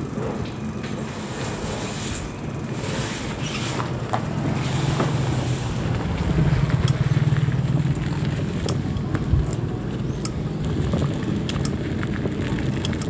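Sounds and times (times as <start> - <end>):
bicycle rattling on gravel: 0.0 - 13.0.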